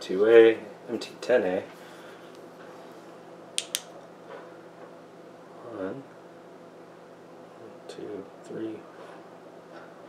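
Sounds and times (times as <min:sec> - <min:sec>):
flashlight clicks: 0:03.6 - 0:03.9.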